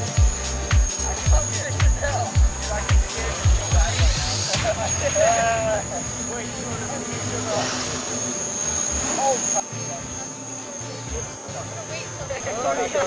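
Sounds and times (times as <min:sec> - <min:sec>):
quadcopter whine: 0:00.0 - 0:13.0
people laughing: 0:01.0 - 0:06.3, 0:12.0 - 0:13.0
people talking: 0:01.0 - 0:08.1, 0:09.0 - 0:13.0.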